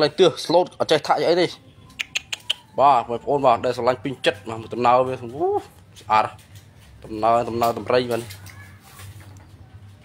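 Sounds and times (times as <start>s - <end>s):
person speaking: 0.0s - 8.9s.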